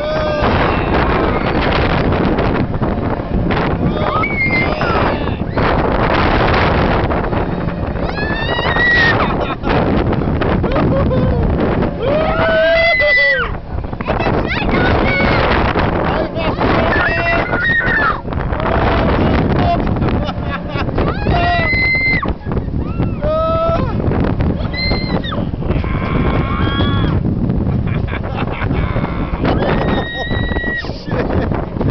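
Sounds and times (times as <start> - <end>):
wind buffeting microphone: 0.0 - 31.9
riders screaming: 3.8 - 5.8, 8.0 - 9.5, 12.0 - 13.6, 16.6 - 19.2, 21.0 - 23.9, 24.6 - 27.2, 29.0 - 30.9.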